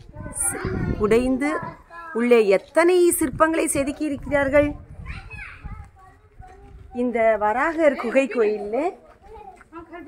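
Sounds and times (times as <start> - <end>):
child's voice: 0.0 - 2.2, 5.0 - 7.0, 9.2 - 10.0.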